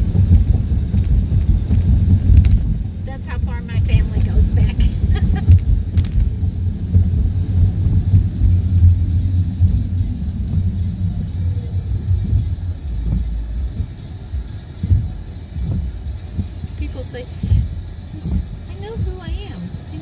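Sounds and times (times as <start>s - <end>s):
car road and engine rumble: 0.0s - 20.0s.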